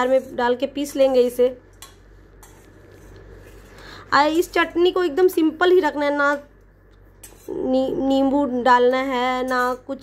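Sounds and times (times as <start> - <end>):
metal spatula scraping pan: 0.0 - 5.3, 7.2 - 8.4, 9.3 - 10.0.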